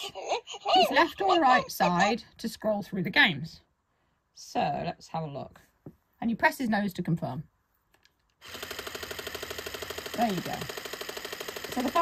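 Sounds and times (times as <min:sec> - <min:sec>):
robot toy rattling: 0:08.6 - 0:12.0.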